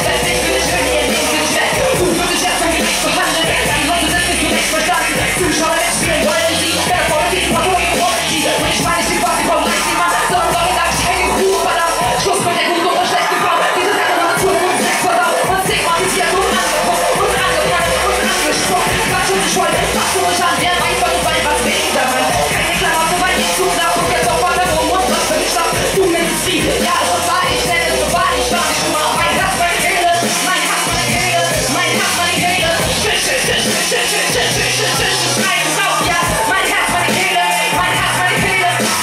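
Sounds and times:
rapping over a heavy bass beat: 0:00.0 - 0:39.0.

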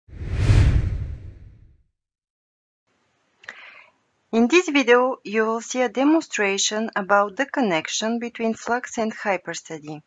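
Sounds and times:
deep rumble: 0:00.1 - 0:01.7
whoosh sound effect: 0:00.1 - 0:01.7.

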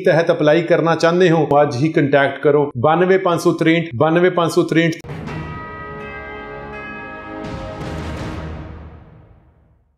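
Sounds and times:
bell-like chime tones: 0:05.0 - 0:08.5.

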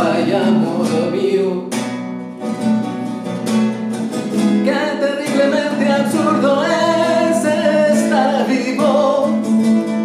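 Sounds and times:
man singing wordless notes: 0:00.0 - 0:01.8, 0:04.6 - 0:09.6
acoustic guitar: 0:00.0 - 0:10.0.

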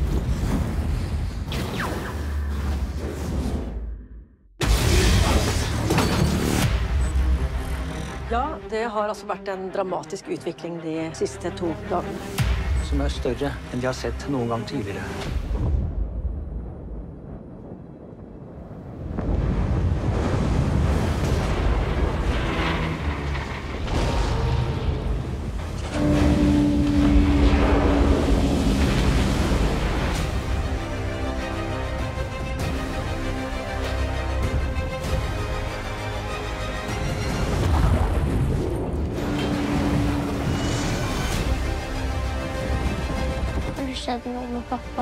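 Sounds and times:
wind: 0:15.2 - 0:45.0
rough sea rumble: 0:15.4 - 0:33.8.

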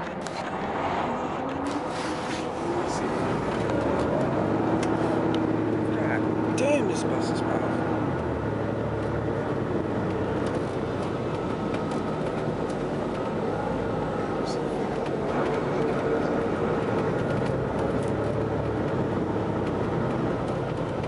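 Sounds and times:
coach engine and road noise: 0:00.0 - 0:21.0.

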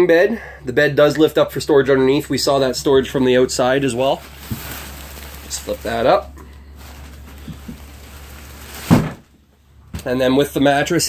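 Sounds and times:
bed base thunk: 0:08.7 - 0:09.3.

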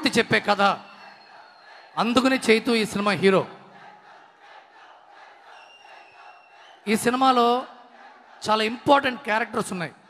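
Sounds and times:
crowd cheering and shouting: 0:00.0 - 0:02.6, 0:03.6 - 0:09.2.

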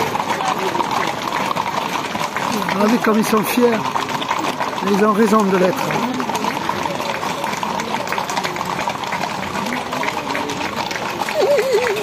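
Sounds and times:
crowd voices: 0:00.0 - 0:12.0
horse hooves clopping on asphalt: 0:00.0 - 0:12.0.

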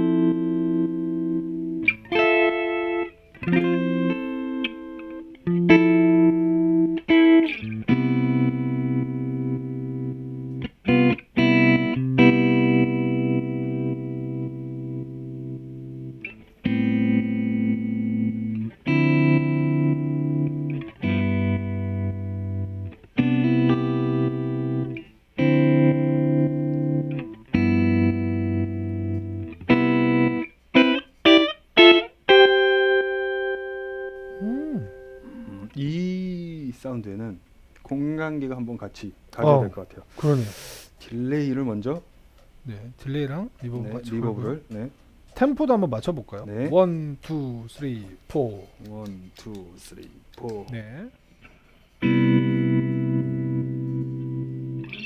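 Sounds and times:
electric guitar chords with tremolo: 0:00.0 - 0:35.8, 0:52.0 - 0:55.0.

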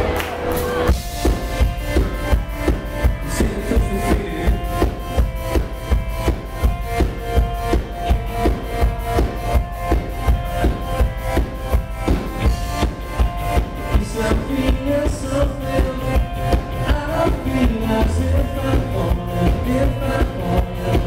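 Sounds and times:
electric guitar chords: 0:00.0 - 0:21.0
rock band playing: 0:00.0 - 0:21.0.

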